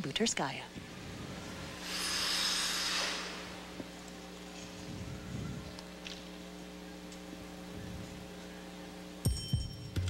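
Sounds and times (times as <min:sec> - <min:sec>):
skate blades hissing across ice: 0:01.8 - 0:03.7.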